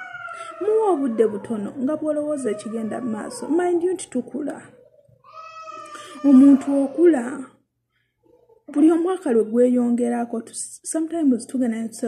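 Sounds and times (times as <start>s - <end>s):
long high-pitched cry: 0.0s - 1.7s, 4.8s - 6.9s
woman speaking: 0.3s - 4.8s, 6.0s - 7.6s, 8.7s - 12.0s.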